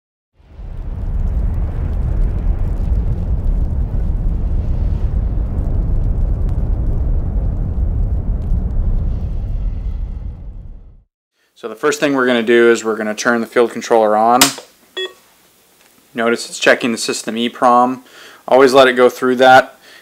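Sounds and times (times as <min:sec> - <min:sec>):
faint crackles: 0:00.4 - 0:09.2
deep steady rumbling: 0:00.4 - 0:11.1.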